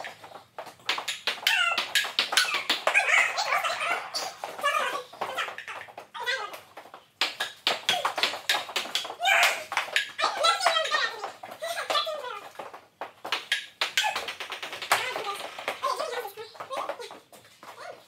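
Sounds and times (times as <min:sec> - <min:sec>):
table tennis ball clicking: 0:00.0 - 0:03.1, 0:05.2 - 0:11.0, 0:12.4 - 0:17.2.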